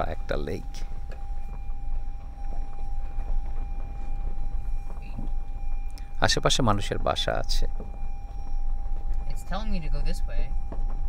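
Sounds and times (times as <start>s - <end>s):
car road rumble: 0.0s - 11.0s
thin steady tone: 0.0s - 11.0s.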